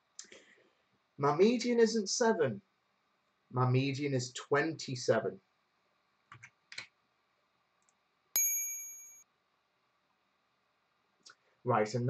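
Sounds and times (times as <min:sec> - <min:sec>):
bright bell-like ding: 0:08.4 - 0:09.2.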